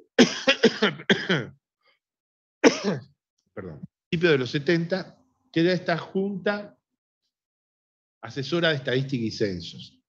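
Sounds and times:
man coughing: 0:00.0 - 0:01.6, 0:02.6 - 0:03.1.

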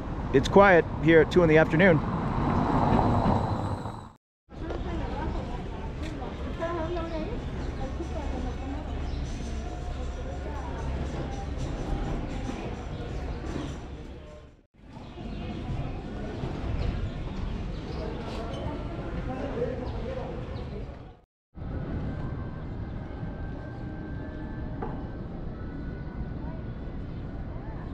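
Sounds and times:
traffic noise: 0:00.0 - 0:27.9
faint voices of passers-by: 0:00.4 - 0:27.9.

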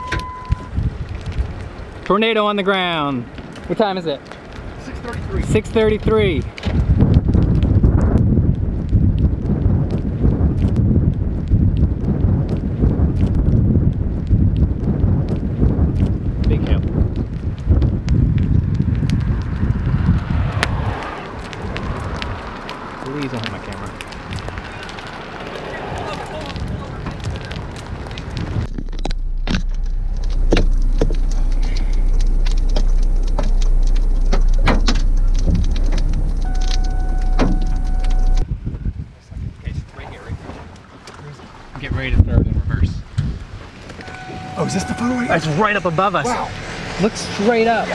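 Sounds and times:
wind buffeting microphone: 0:00.0 - 0:47.9
vehicle engine idling: 0:29.2 - 0:38.4.

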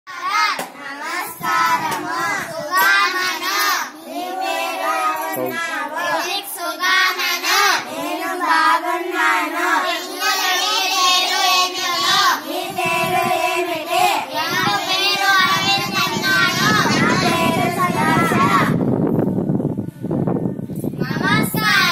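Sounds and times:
children singing in unison: 0:00.1 - 0:18.8, 0:21.0 - 0:21.9.

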